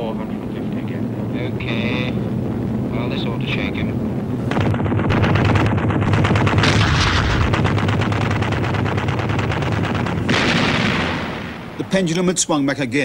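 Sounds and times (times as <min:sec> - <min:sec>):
aircraft engines droning: 0:00.0 - 0:13.0
cannon firing rapid burst: 0:04.4 - 0:12.0.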